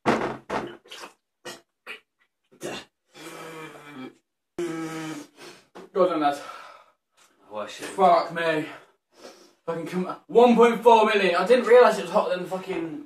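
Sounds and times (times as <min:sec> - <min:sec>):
sharp exhalations: 0:02.6 - 0:05.8, 0:09.1 - 0:09.6.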